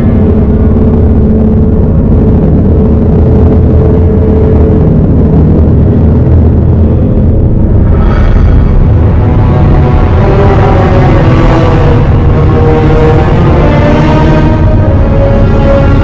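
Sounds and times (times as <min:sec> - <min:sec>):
low rumbling drone: 0:00.0 - 0:16.0.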